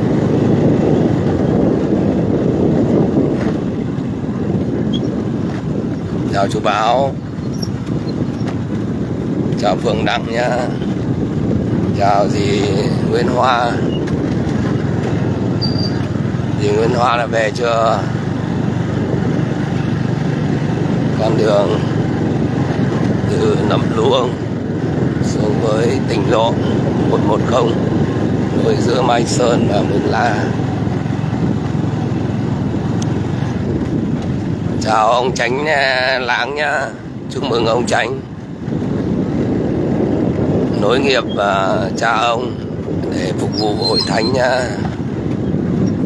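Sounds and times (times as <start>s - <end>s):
motorbike engine running: 0.0s - 9.6s, 13.4s - 35.1s
wind on microphone: 0.0s - 46.0s.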